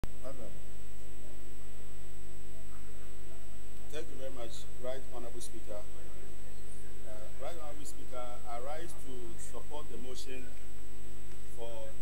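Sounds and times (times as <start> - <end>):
electrical mains hum: 0.0 - 12.0
man speaking: 0.2 - 0.6, 3.9 - 6.4, 7.0 - 10.6, 11.5 - 12.0.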